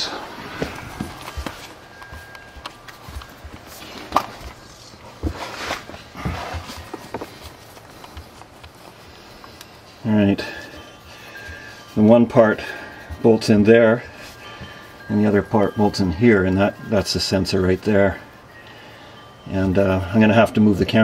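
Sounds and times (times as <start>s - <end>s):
footsteps on concrete: 0.3s - 10.0s.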